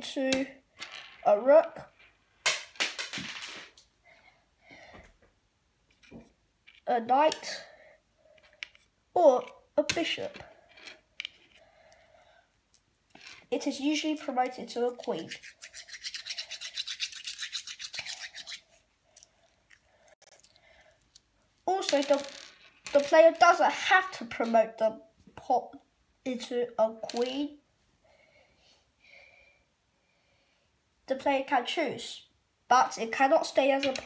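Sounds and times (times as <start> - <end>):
chess pieces knocking on board: 2.5 - 3.8, 21.8 - 23.5
rapid scratching strokes: 15.0 - 18.8.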